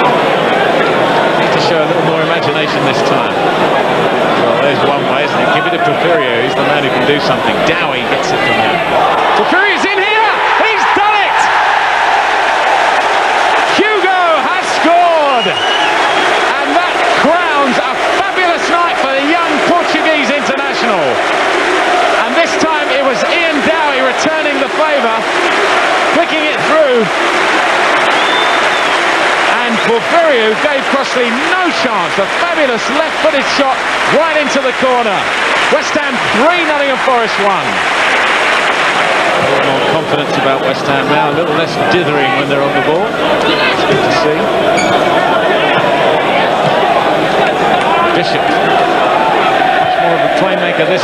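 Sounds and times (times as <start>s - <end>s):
stadium crowd singing and chanting: 43.1s - 51.0s.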